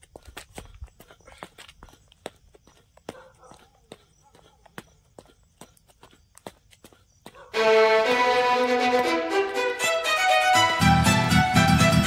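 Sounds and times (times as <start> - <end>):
running footsteps: 0.0 - 12.0.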